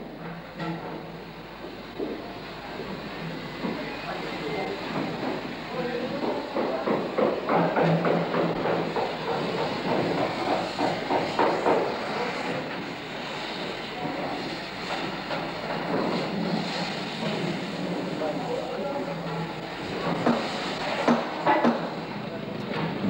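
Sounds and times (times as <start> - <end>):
rail trolley wheels clattering: 0.0 - 23.0.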